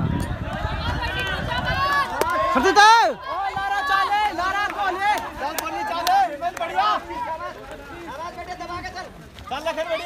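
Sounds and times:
runners footsteps on dirt track: 0.0 - 10.0
spectators shouting: 0.0 - 10.0.

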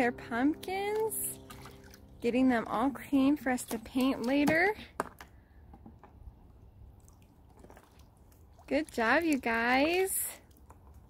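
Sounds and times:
water dripping and sloshing: 0.0 - 5.1, 6.2 - 11.0.

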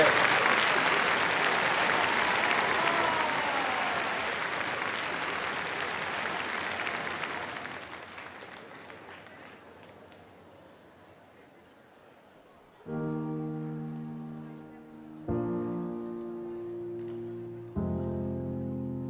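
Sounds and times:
audience applauding: 0.0 - 10.2.

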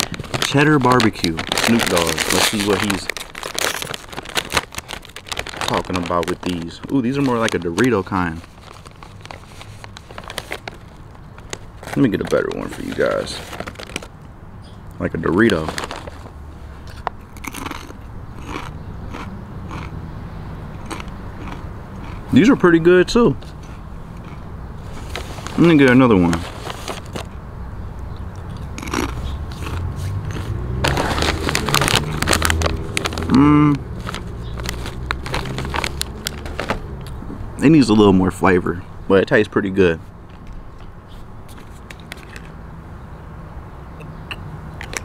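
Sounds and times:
chips being chewed: 0.0 - 14.1, 16.9 - 20.0, 20.8 - 22.4, 23.5 - 27.3, 28.5 - 37.2.

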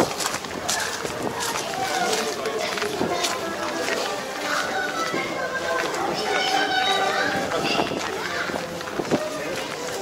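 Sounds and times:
footsteps on gravel: 0.0 - 10.0
people talking: 0.0 - 10.0.

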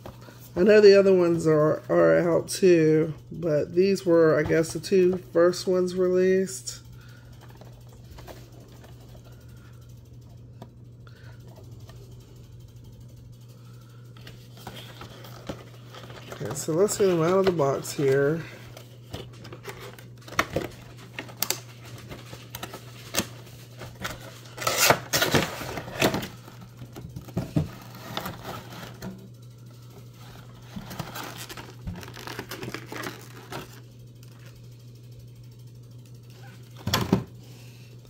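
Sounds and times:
clicks and scrapes of packaging: 14.2 - 29.1, 30.2 - 33.8
plastic crinkling: 30.2 - 34.5.

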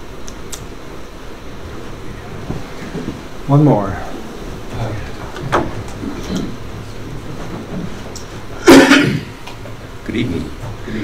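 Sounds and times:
room background hum: 0.0 - 11.0
footsteps knocks and shuffles: 2.3 - 3.4, 4.9 - 8.6.

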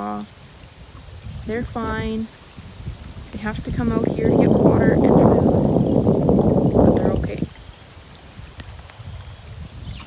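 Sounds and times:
runoff water flowing: 0.0 - 9.8
low microphone rumble: 0.0 - 10.0.

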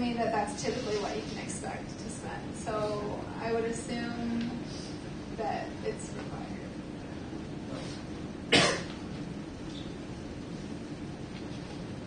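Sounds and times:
faint room hum: 0.0 - 12.0
sharp cough: 8.5 - 9.0.

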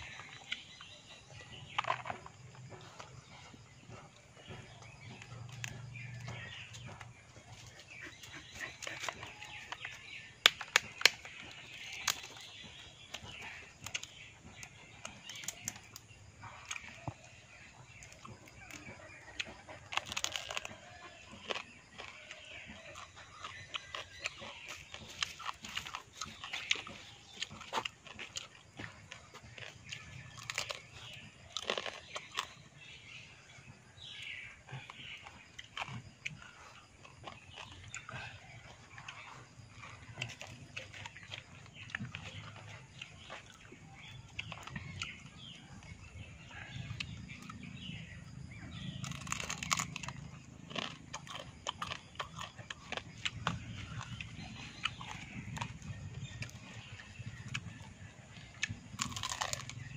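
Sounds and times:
person chewing crunchy food: 0.0 - 59.9.

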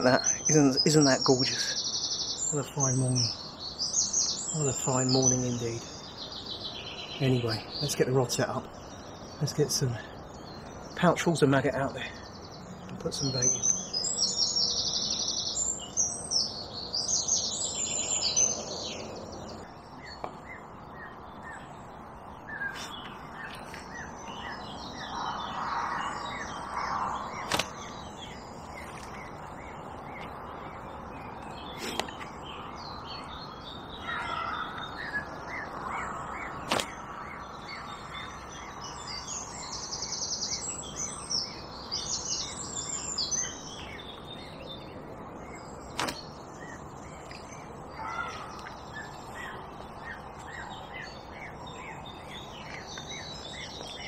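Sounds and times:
songbirds singing and chirping: 0.0 - 54.0
sharp clicks: 27.4 - 27.8, 36.6 - 37.0, 45.9 - 46.2.

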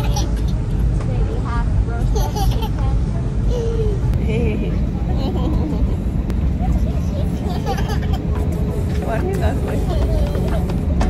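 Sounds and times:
toddler babbling and laughing: 0.0 - 0.6, 2.0 - 4.1, 7.2 - 8.4
soft voices: 0.0 - 10.9
airliner cabin rumble: 0.0 - 11.0.

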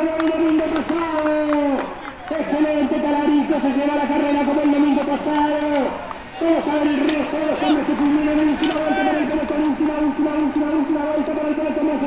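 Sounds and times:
man announcing over loudspeaker: 0.0 - 12.0.

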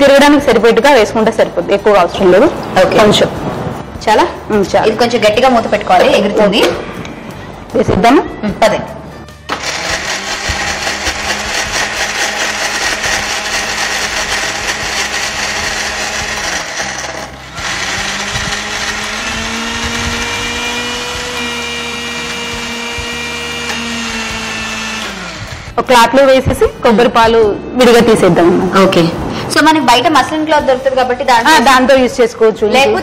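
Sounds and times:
mixer grinder whining: 9.5 - 25.8.

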